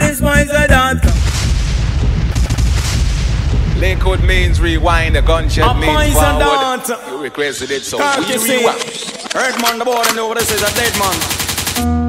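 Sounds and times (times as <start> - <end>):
gunshot and explosion effects: 1.0 - 5.6
person singing: 5.6 - 7.3.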